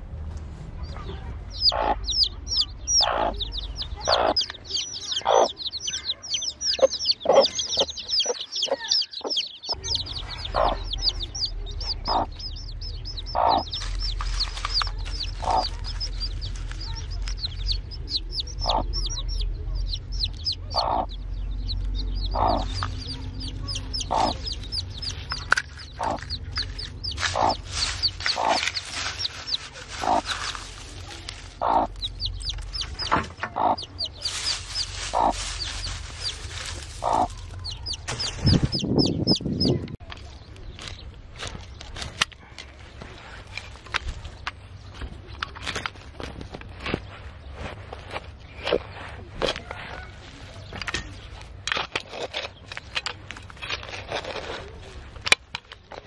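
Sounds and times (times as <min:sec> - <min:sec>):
chicks peeping: 0:00.8 - 0:56.0
hen clucking: 0:00.9 - 0:40.1.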